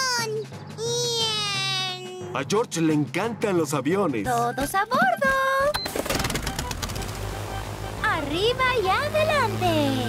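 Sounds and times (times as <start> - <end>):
background music: 0.0 - 10.0
cartoon propeller engine puttering: 5.7 - 10.0.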